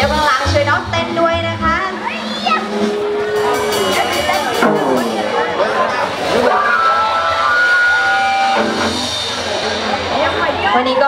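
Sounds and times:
live band music: 0:00.0 - 0:11.0
voices: 0:00.0 - 0:11.0.

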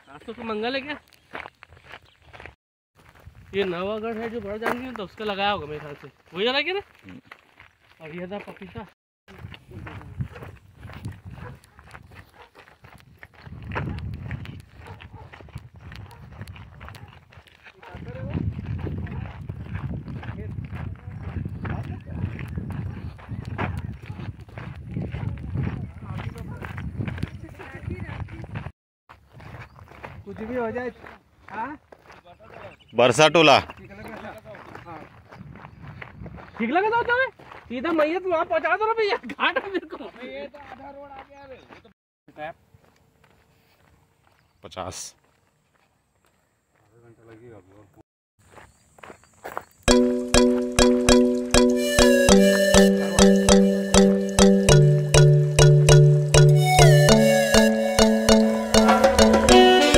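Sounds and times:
footsteps on dirt path: 0:00.0 - 0:41.9, 0:42.7 - 0:47.4, 0:48.4 - 0:59.5
loud music with sharp repeated notes: 0:49.9 - 0:59.9.

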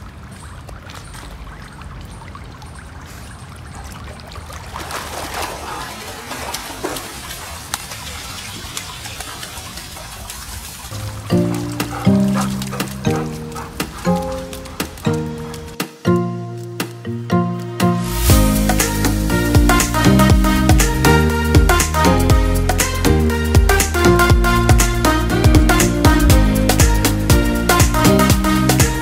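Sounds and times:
water trickling: 0:00.0 - 0:16.8
pool water splashing: 0:00.0 - 0:29.0
background music: 0:11.0 - 0:29.0.

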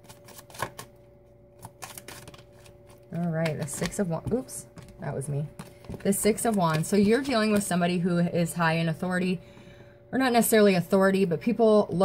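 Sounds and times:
cards being shuffled: 0:00.0 - 0:01.0, 0:01.6 - 0:07.8.

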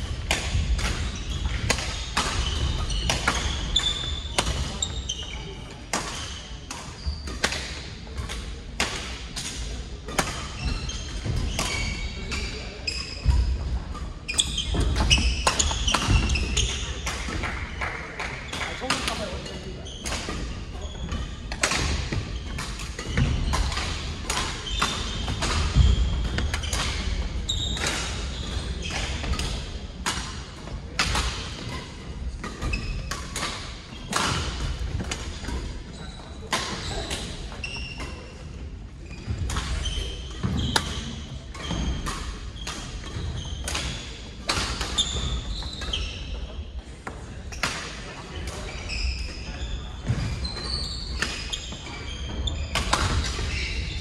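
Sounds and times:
shoes squeaking: 0:18.6 - 0:29.4, 0:44.9 - 0:46.4, 0:48.6 - 0:54.0.

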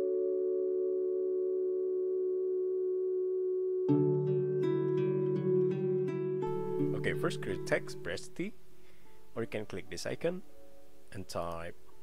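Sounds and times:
sustained electronic chord: 0:00.0 - 0:11.1
music with plucked notes: 0:03.9 - 0:11.0.

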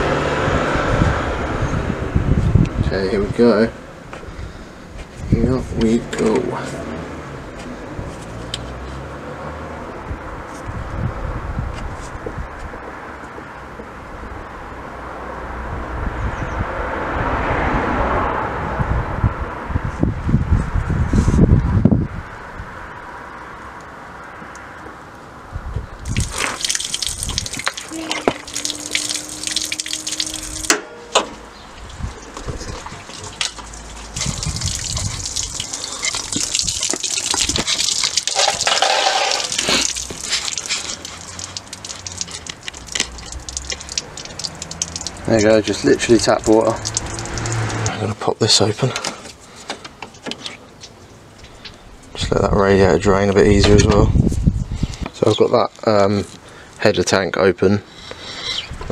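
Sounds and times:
water splashing onto tarmac: 0:26.0 - 0:49.3.

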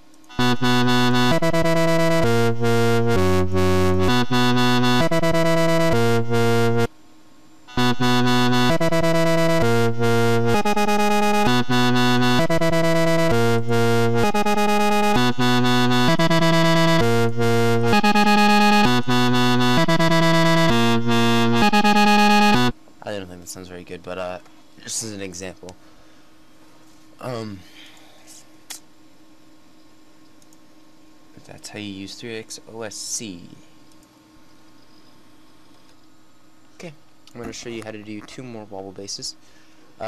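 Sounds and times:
bright buzzy synthesizer notes: 0:00.0 - 0:07.0, 0:07.6 - 0:22.8.

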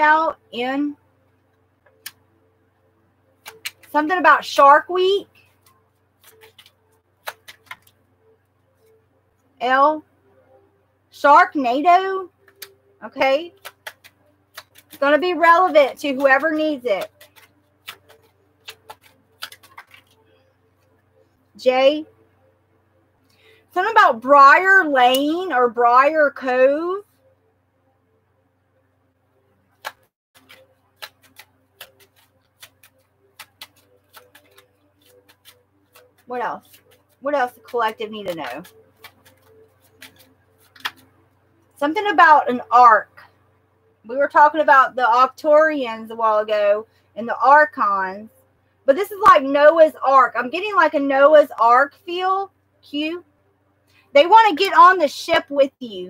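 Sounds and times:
woman speaking: 0:00.0 - 0:01.0, 0:03.9 - 0:05.4, 0:09.6 - 0:10.1, 0:11.2 - 0:12.3, 0:13.0 - 0:13.6, 0:15.0 - 0:17.2, 0:21.6 - 0:22.1, 0:23.7 - 0:27.0, 0:36.3 - 0:38.7, 0:41.8 - 0:43.3, 0:44.1 - 0:48.3, 0:48.9 - 0:53.2, 0:54.2 - 0:56.0
faint steady hum: 0:00.0 - 0:56.0
cards clicking and tapping on table: 0:03.4 - 0:03.9, 0:06.2 - 0:07.9, 0:13.6 - 0:15.0, 0:17.0 - 0:20.2, 0:29.8 - 0:36.0, 0:37.7 - 0:41.0.

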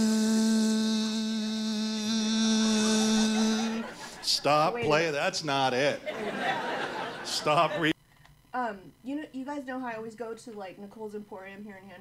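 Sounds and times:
man imitating tape rewinding: 0:01.9 - 0:05.2.

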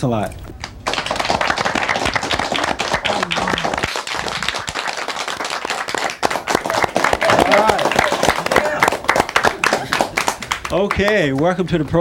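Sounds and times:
audience applauding: 0:00.6 - 0:11.5.

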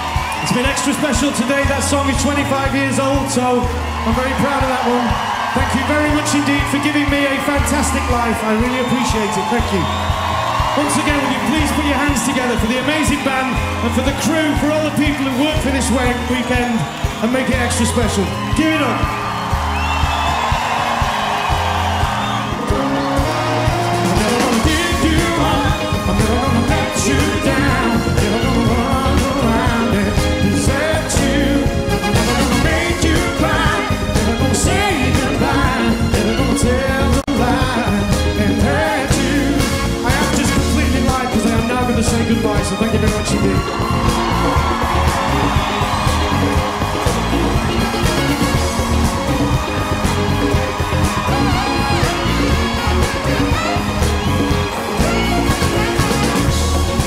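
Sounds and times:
bass guitar: 0:00.0 - 0:57.0
crowd cheering: 0:00.0 - 0:57.0
drums: 0:00.0 - 0:57.0
live band playing groove: 0:00.0 - 0:57.0.

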